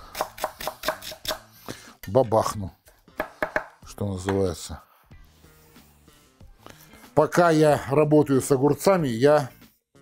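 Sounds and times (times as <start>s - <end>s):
knife chopping on wooden board: 0.0s - 1.5s, 3.1s - 4.4s.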